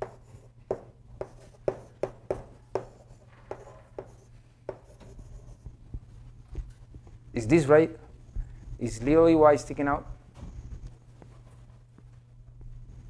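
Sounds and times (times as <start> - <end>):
chalk tapping on chalkboard: 0.0 - 5.7
steady low hum: 0.0 - 13.0.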